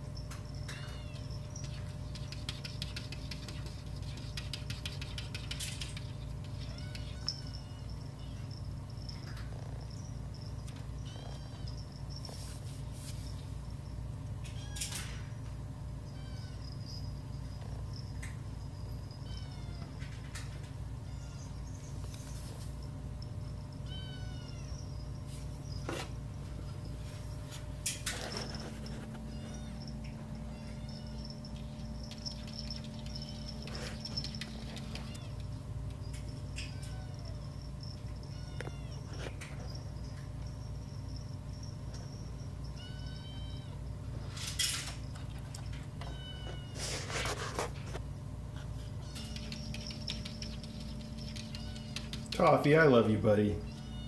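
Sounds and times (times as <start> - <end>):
steady low hum: 0.0 - 54.0
kittens mewing: 5.4 - 12.0, 23.0 - 26.3, 48.6 - 52.6.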